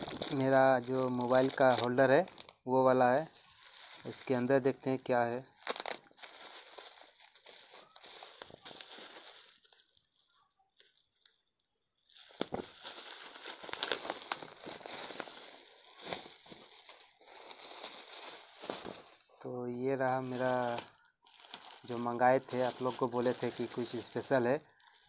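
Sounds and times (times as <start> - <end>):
bubble wrap crinkling: 0.0 - 25.0.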